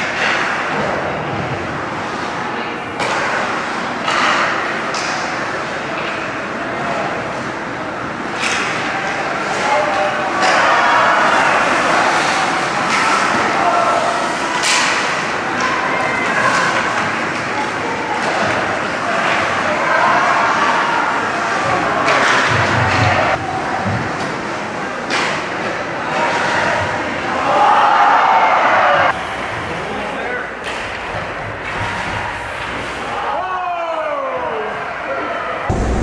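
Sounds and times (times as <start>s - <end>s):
spectators' voices: 0.0s - 31.4s.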